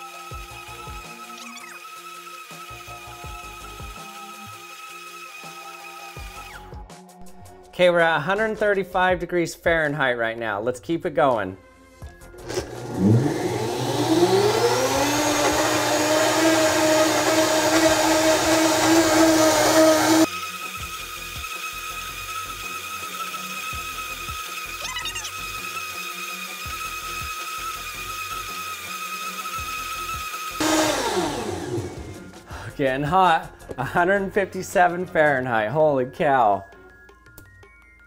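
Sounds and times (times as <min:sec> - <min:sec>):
blender motor whining: 0:00.0 - 0:06.8, 0:12.2 - 0:32.4.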